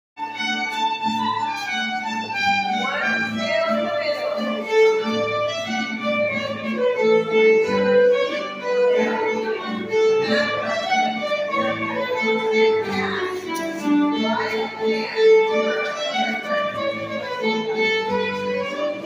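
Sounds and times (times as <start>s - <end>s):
fiddle melody: 0.2s - 19.0s.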